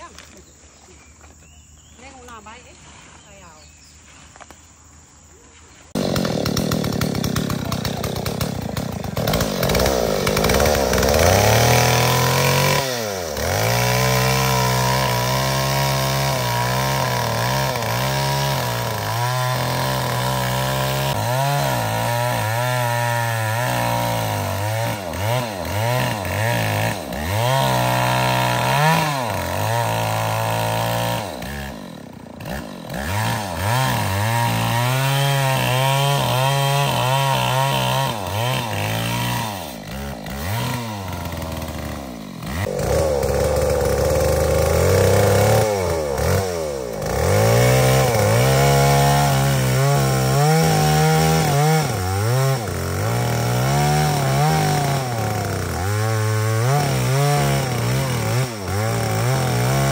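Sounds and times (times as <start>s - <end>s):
chainsaw cutting wood: 5.9s - 59.9s.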